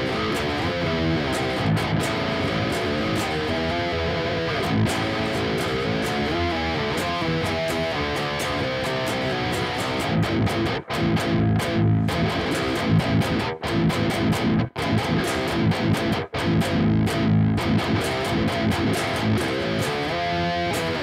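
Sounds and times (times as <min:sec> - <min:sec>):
low electric guitar riff: 0:00.0 - 0:21.0.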